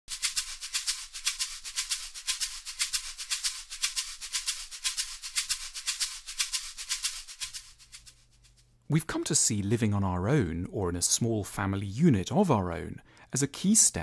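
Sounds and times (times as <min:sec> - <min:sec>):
fast shaker rhythm: 0:00.1 - 0:08.8.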